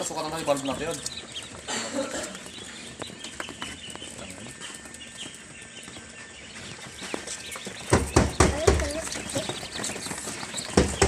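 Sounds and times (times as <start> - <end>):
ducklings peeping: 0.0 - 11.0.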